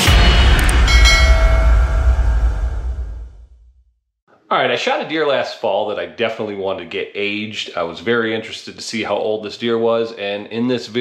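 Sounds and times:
deep booming hit with rumble: 0.0 - 3.7
bright bell-like ringing tones: 0.7 - 2.6.

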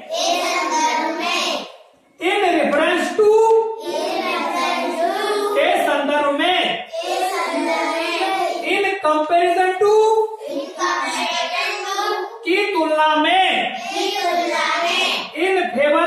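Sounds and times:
children chanting in unison: 0.0 - 1.8, 3.8 - 5.8, 6.9 - 8.7, 10.4 - 12.4, 13.8 - 15.4.

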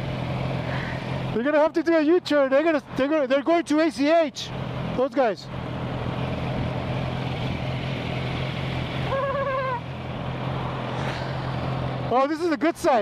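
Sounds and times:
motorcycle engines idling: 0.0 - 13.0.

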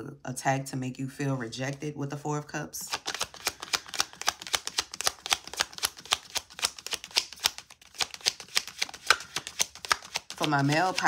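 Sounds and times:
cards being shuffled: 2.8 - 11.0.

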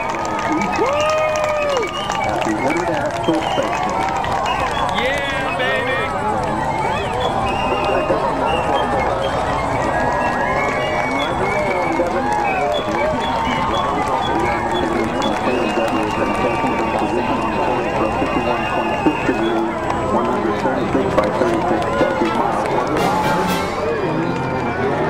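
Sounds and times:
babble of many voices: 0.0 - 25.0.

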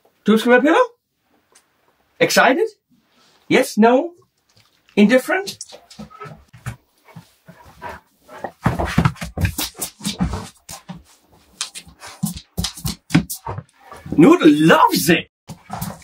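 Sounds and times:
dog feet and toy clicking: 5.5 - 6.8, 7.5 - 14.1.

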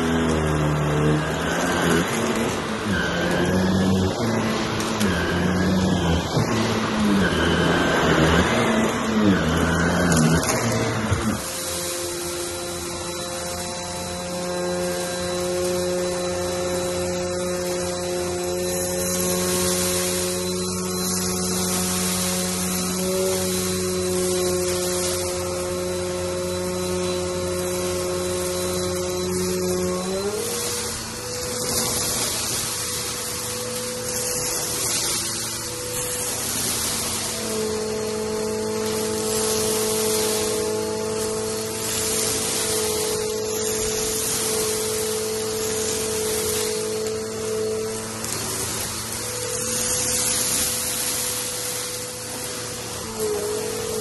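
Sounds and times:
vacuum cleaner on carpet: 0.0 - 54.0
vacuum motor humming with hiss: 0.0 - 54.0.

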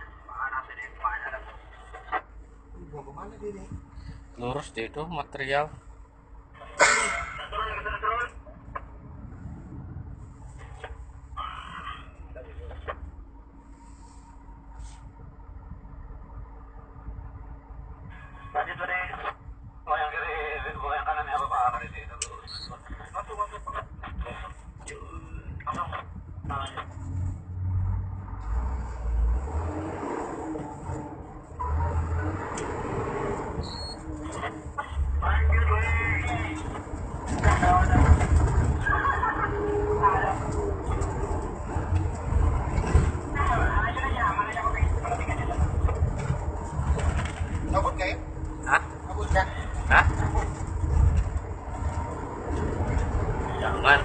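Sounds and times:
engine and tyre rumble on gravel: 0.0 - 22.2, 22.8 - 54.0
vehicle driving on rough dirt road: 0.0 - 54.0.

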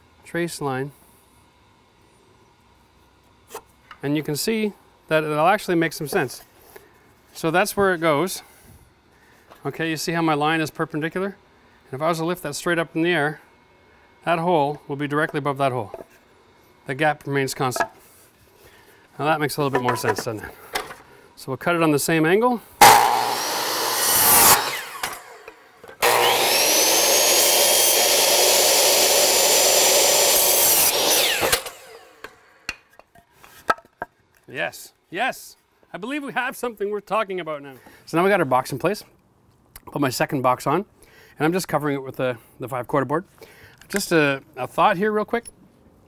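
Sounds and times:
saw blade winding down whine: 22.8 - 32.6
miter saw cutting wood: 22.8 - 32.7.

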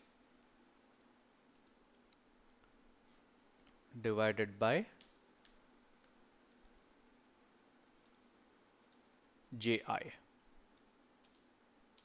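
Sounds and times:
low room hiss: 0.0 - 12.0
computer keys clicking: 0.2 - 2.7, 5.0 - 6.8, 7.8 - 8.3, 8.9 - 9.2, 10.7 - 12.0.

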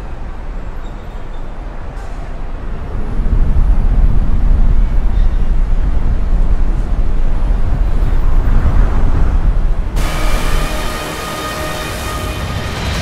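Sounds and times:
low rumbling noise: 0.0 - 13.0.

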